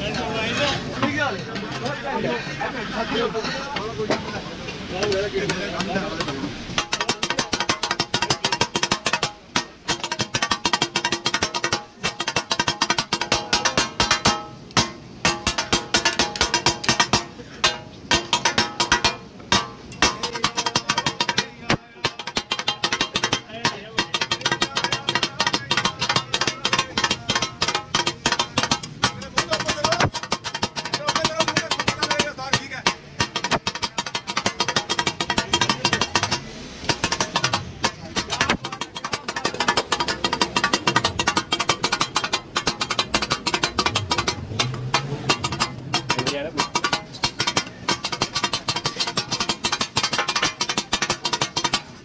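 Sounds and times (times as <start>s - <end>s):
metal spatulas clattering on griddle: 1.0s - 52.0s.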